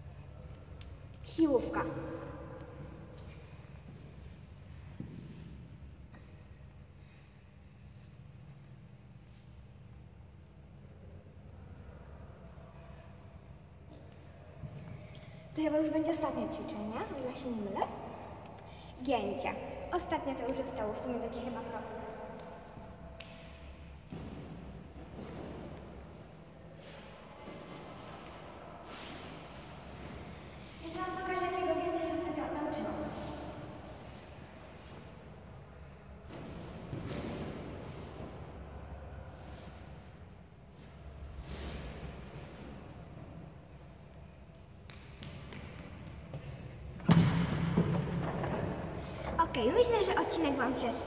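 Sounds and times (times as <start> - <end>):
low hum of hall: 0.0 - 51.0.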